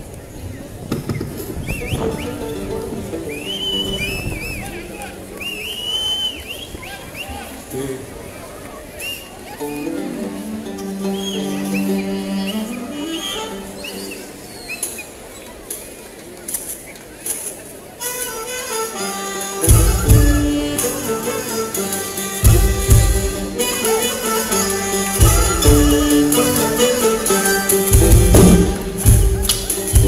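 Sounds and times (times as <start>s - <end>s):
amplified instruments sustained notes: 1.7s - 5.9s, 9.5s - 14.5s, 18.8s - 30.0s.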